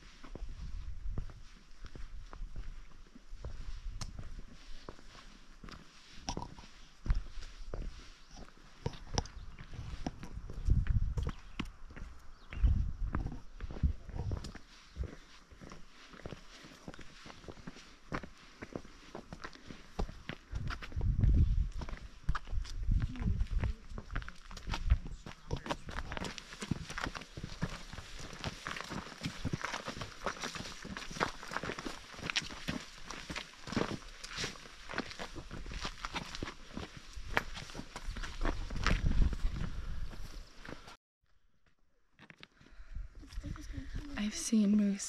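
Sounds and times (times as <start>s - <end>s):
footsteps on dirt and rock: 0.0s - 41.0s
low microphone rumbles: 20.6s - 26.2s.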